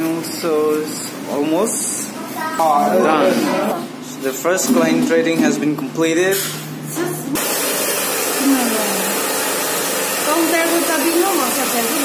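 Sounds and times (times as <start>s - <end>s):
hair dryer running: 7.0s - 12.0s.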